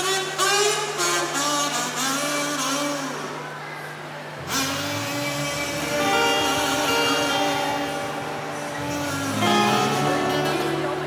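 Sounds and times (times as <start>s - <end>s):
acoustic guitars: 4.4s - 11.0s.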